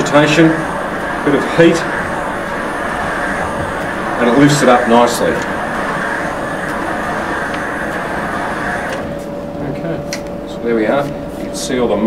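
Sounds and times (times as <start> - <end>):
cleaner head scrubbing carpet: 0.0 - 9.3
steam cleaner running: 0.0 - 12.0.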